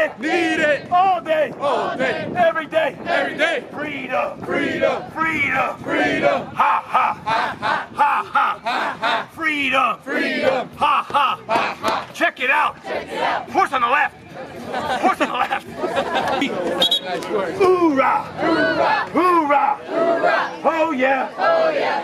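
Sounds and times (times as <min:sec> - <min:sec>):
crowd chanting in rhythm: 0:00.0 - 0:15.0, 0:15.6 - 0:22.0.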